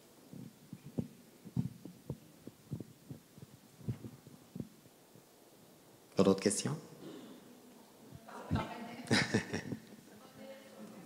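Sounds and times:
soft low thumps: 0.3 - 5.3.

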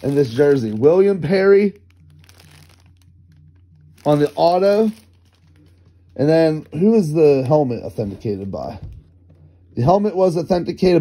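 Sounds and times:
plastic bag crinkling: 0.0 - 9.0
low steady hum: 0.0 - 11.0.

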